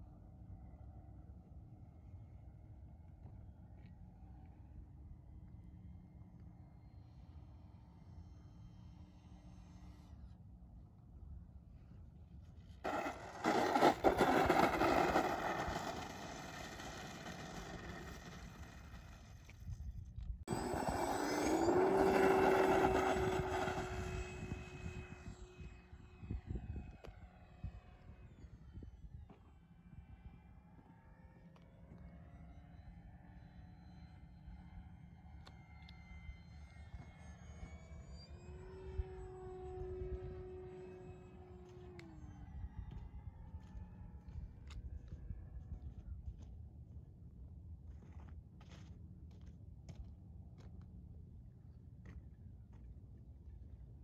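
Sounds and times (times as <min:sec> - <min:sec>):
model airplane motor whine: 0:06.4 - 0:10.6, 0:12.4 - 0:46.0.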